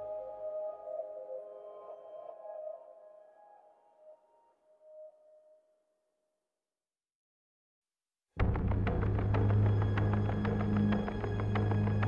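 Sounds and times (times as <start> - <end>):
ambient music with held tones: 0.0 - 5.7, 8.4 - 12.0.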